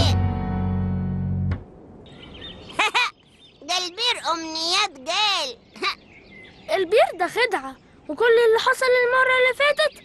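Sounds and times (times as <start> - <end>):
soft birdsong chirps: 0.0 - 10.0.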